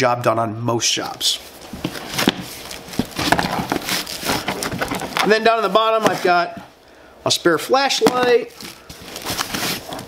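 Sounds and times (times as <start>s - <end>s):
rustling in a fabric bag: 1.4s - 6.5s, 8.3s - 10.0s.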